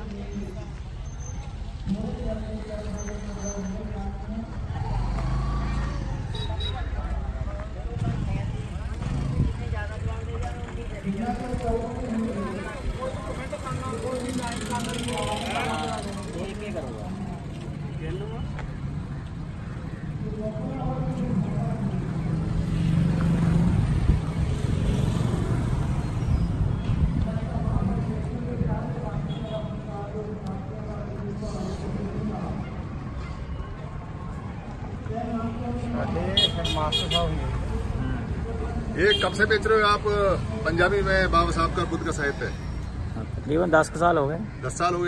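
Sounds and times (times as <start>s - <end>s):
vehicle engine passing by: 4.7s - 6.4s, 21.6s - 26.7s.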